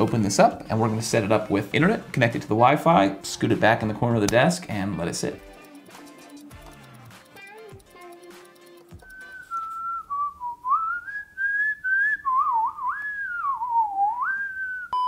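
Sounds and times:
laptop keyboard clicks: 0:05.4 - 0:09.7
person whistling a tune: 0:08.8 - 0:15.0.

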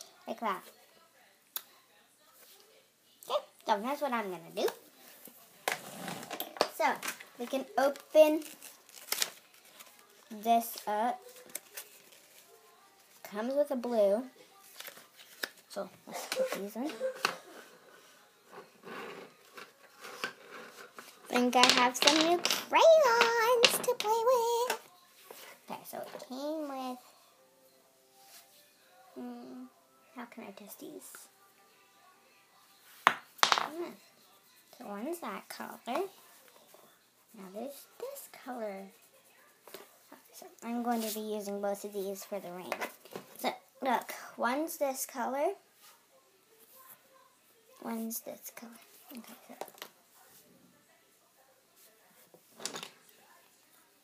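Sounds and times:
crayons rattling in plastic tub: 0:19.9 - 0:24.0.

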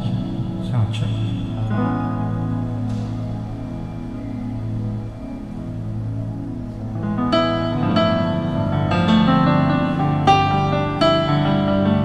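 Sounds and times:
keyboard chord over bass note: 0:00.0 - 0:12.0.

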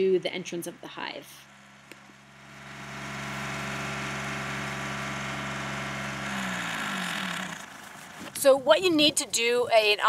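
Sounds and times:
tractor diesel engine running: 0:00.1 - 0:10.0.

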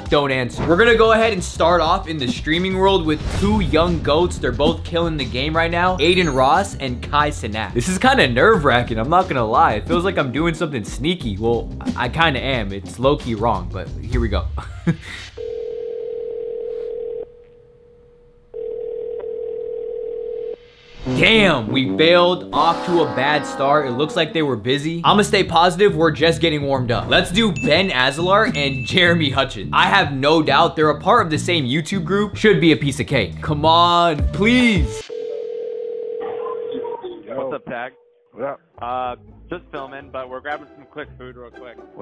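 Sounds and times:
telephone ringback tone: 0:15.4 - 0:17.3, 0:18.5 - 0:20.6, 0:35.1 - 0:37.0.

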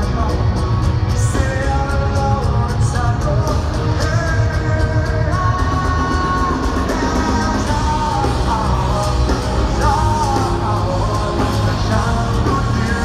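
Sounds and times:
bass: 0:00.0 - 0:13.0
drums: 0:00.0 - 0:13.0
electric guitars: 0:00.0 - 0:13.0
lead vocal singing: 0:00.0 - 0:13.0.

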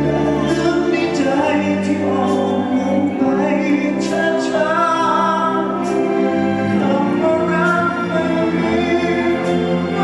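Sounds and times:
man singing: 0:00.0 - 0:10.0
symphony orchestra playing: 0:00.0 - 0:10.0.

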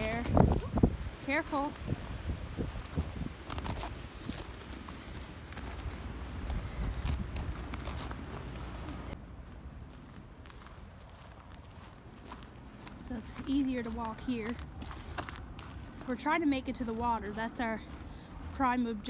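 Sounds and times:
footsteps on snow: 0:00.0 - 0:19.0.

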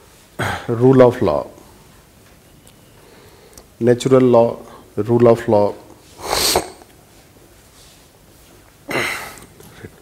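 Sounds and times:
man sneezing: 0:06.2 - 0:06.8, 0:08.9 - 0:09.4.

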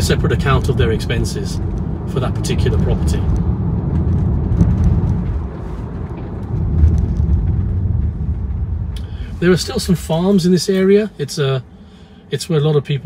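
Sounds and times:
car engine rumble: 0:00.0 - 0:13.0
tyres on road: 0:00.0 - 0:13.0.

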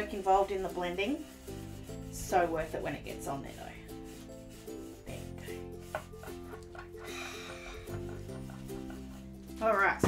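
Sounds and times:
foam brush scrubbing paper: 0:00.0 - 0:10.0
light background music: 0:00.0 - 0:10.0.

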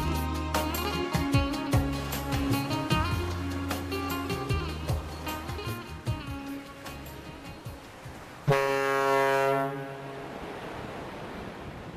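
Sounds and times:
water noise: 0:00.0 - 0:11.9
wind: 0:00.0 - 0:11.9
ferry horn blast: 0:08.5 - 0:10.2.

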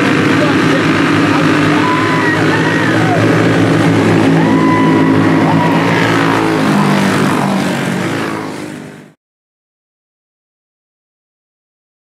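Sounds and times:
go-kart engines droning: 0:00.0 - 0:09.2.

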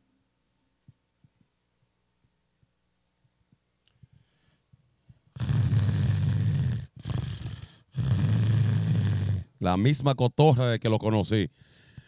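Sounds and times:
rough snore-like vocal noises: 0:05.3 - 0:09.6.

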